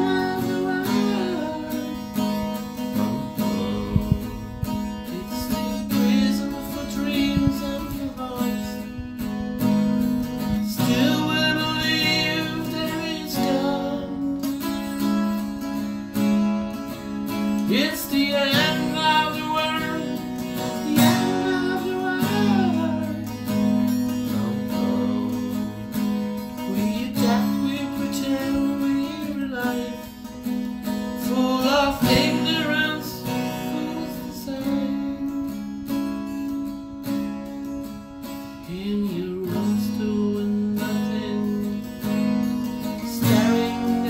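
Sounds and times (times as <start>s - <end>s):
acoustic guitar strumming chords: 0.0s - 44.0s.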